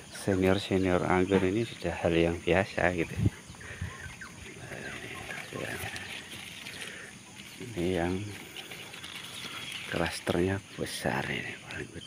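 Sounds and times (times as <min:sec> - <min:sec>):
small birds chirping: 0:00.0 - 0:12.0
low bird call: 0:03.0 - 0:10.0.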